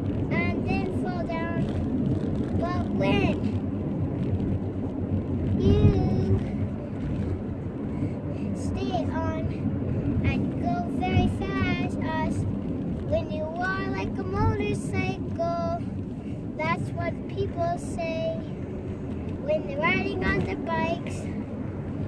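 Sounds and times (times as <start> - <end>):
low rumble: 0.0 - 22.0
young child singing: 0.3 - 1.7, 2.6 - 3.5, 5.6 - 6.5, 8.6 - 9.5, 10.3 - 12.4, 13.1 - 15.8, 16.6 - 18.5, 19.4 - 21.3.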